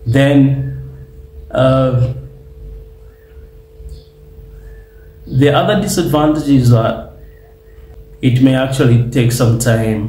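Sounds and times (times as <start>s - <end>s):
faint steady pure tone: 0.0s - 10.0s.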